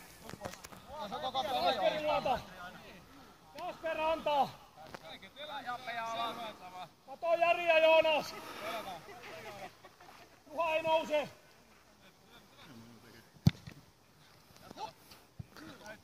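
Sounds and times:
man shouting: 7.2s - 8.2s.

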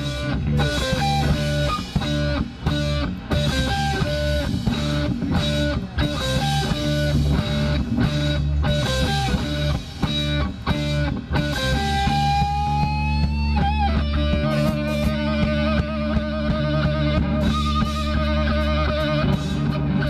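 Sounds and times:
bass: 0.0s - 20.0s
drums: 0.0s - 20.0s
electric guitars: 0.0s - 20.0s.

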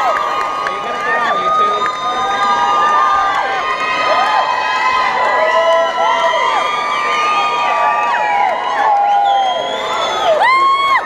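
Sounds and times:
audience cheering and screaming: 0.0s - 11.0s.

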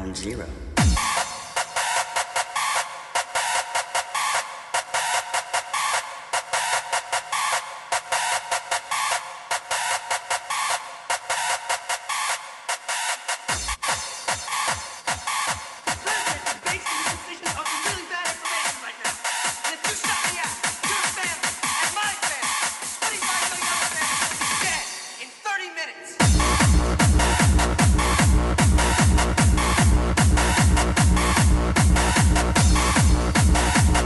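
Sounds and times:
fast electronic dance beat: 0.7s - 25.6s, 26.2s - 34.0s
deep kick drum: 0.8s - 1.2s, 26.2s - 34.0s.

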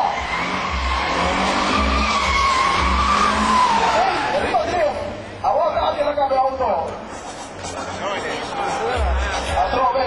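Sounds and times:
tyres squealing: 0.2s - 4.6s.

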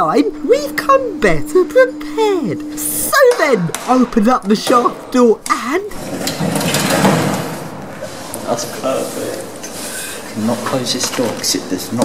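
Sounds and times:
sliding lift door rattling: 5.9s - 7.7s.

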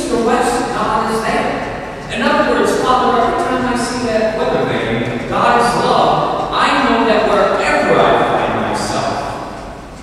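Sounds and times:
man speaking in echoing church: 0.0s - 9.8s.

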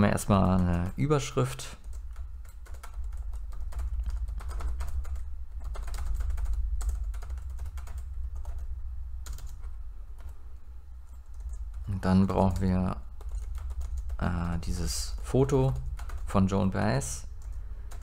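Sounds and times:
steady low hum: 0.0s - 18.0s
computer keyboard typing: 1.8s - 10.4s, 11.1s - 16.7s, 17.3s - 18.0s.

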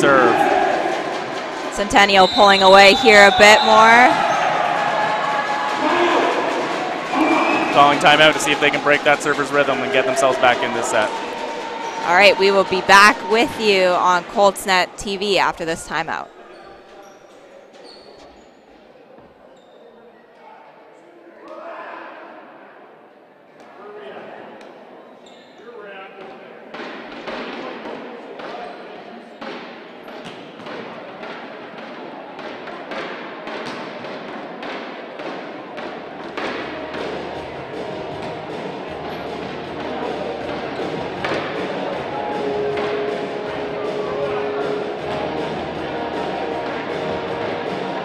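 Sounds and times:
murmur of voices: 0.0s - 48.0s
music: 36.4s - 48.0s.

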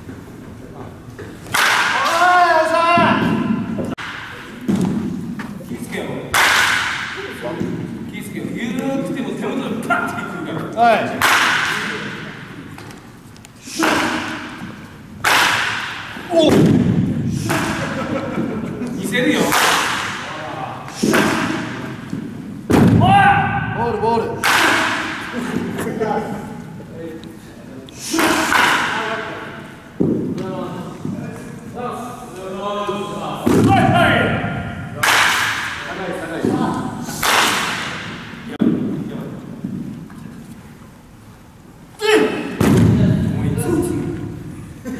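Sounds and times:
bat cracking a baseball: 1.5s - 2.2s, 6.3s - 7.2s, 11.2s - 12.0s, 13.8s - 18.0s, 19.5s - 20.3s, 35.0s - 35.8s, 37.2s - 38.8s
person calling out: 42.0s - 42.6s.

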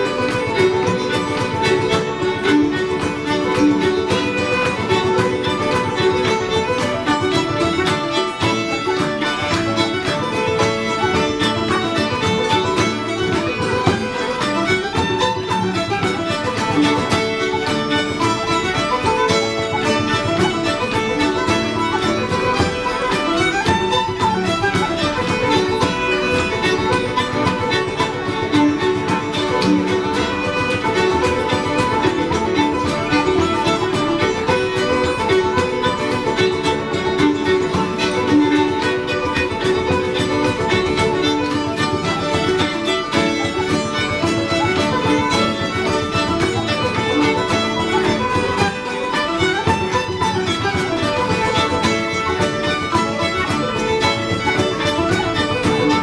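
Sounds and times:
fiddle: 0.0s - 56.0s
flute: 0.0s - 56.0s
guitar: 0.0s - 56.0s
hammered dulcimer: 0.0s - 56.0s
tenor banjo: 0.0s - 56.0s.

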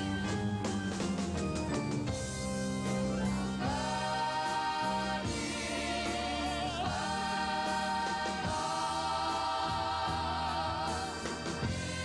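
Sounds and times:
instrumental accompaniment: 0.0s - 12.0s
choir singing: 3.1s - 12.0s.

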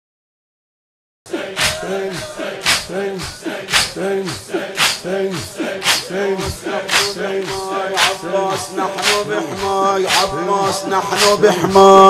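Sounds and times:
men chanting rhythmically: 1.3s - 12.0s.

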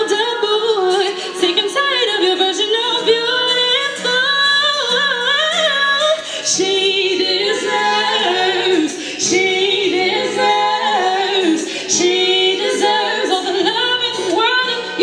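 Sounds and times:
strummed acoustic guitar: 0.0s - 15.0s
woman singing lead: 0.0s - 15.0s
women singing harmony: 0.0s - 15.0s.

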